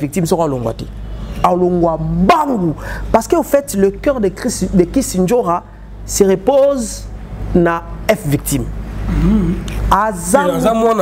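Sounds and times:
person talking: 1.4 - 11.0.

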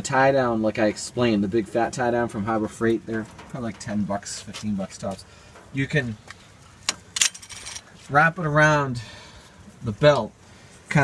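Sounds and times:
metallic clinking: 6.8 - 7.9.

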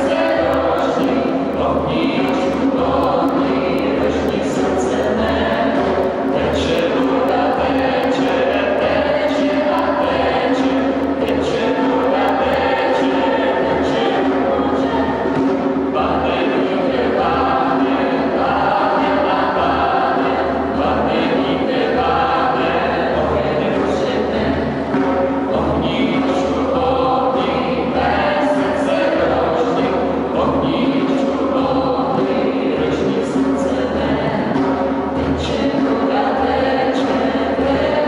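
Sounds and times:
group singing chant: 0.0 - 38.0.

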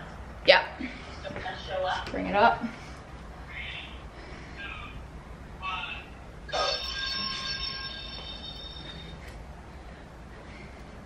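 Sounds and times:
bell-like chime: 6.6 - 9.2.

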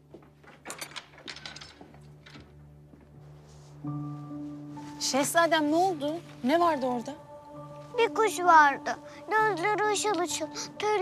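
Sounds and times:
footsteps: 0.0 - 6.6.

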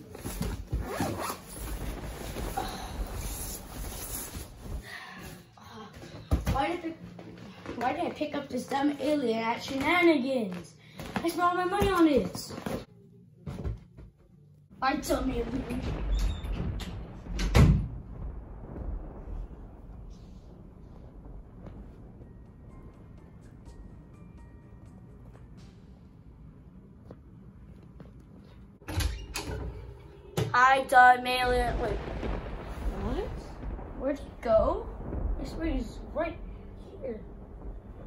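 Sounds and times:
jacket rustling: 0.0 - 5.4
jacket zipper unzipping: 0.4 - 2.3.

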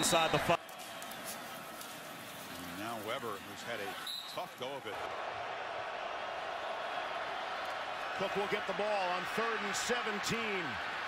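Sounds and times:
stadium crowd noise: 0.0 - 11.0
man commentating: 8.2 - 10.9.

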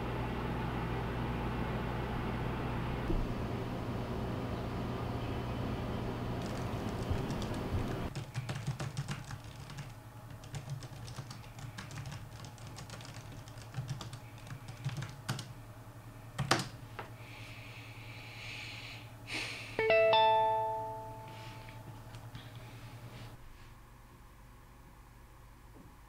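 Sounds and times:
low room hum: 0.0 - 26.0
laptop keyboard typing: 6.4 - 15.5, 16.4 - 16.8.

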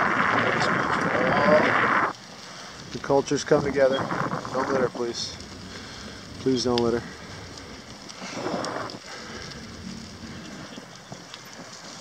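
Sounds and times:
faint clicks: 3.7 - 12.0.

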